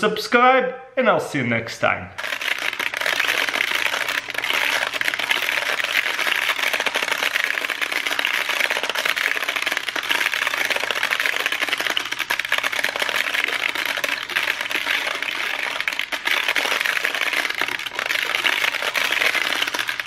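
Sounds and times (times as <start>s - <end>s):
beads clicking rattle: 2.2s - 20.0s.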